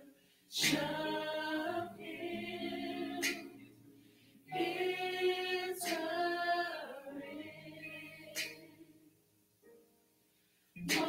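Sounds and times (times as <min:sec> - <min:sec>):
group singing unaccompanied: 0:00.5 - 0:03.7, 0:04.5 - 0:08.9, 0:10.8 - 0:11.0.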